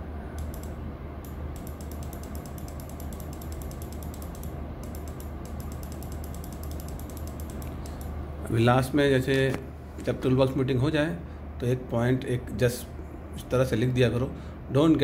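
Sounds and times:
steady low hum: 0:00.0 - 0:15.0
mouse scroll wheel clicking: 0:01.3 - 0:08.1.

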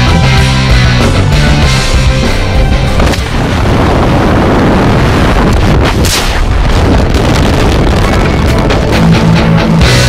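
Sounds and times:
wind roaring on microphone: 0:01.2 - 0:10.0.

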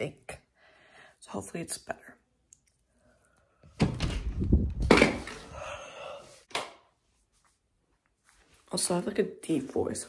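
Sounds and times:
thumps and knocks: 0:03.8 - 0:05.4.

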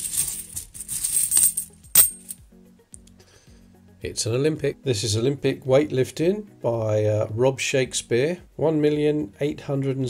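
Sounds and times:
coins jingling in a cloth bag: 0:00.0 - 0:02.4.

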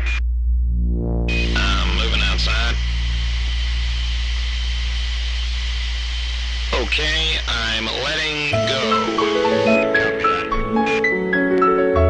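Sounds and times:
man speaking over radio: 0:00.0 - 0:00.2, 0:01.3 - 0:02.9, 0:06.7 - 0:11.0
radio static hum and hiss: 0:00.0 - 0:00.2, 0:01.3 - 0:11.1
faint high tone: 0:00.8 - 0:04.1.

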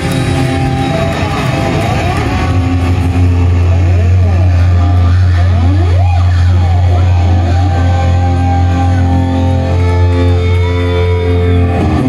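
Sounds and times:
metal band playing live: 0:00.0 - 0:12.0.

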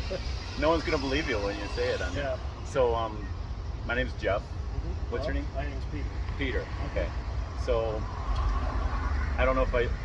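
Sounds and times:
man speaking: 0:00.0 - 0:08.0
car driving past: 0:08.0 - 0:10.0.

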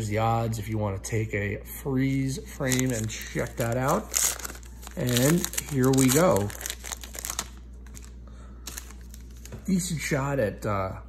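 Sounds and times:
card pack wrapper crinkling: 0:02.6 - 0:09.6.

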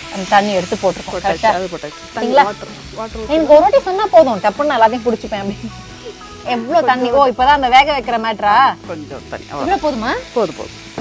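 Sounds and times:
vegetables sizzling in a frying pan: 0:00.0 - 0:11.0
person speaking: 0:02.2 - 0:03.8.

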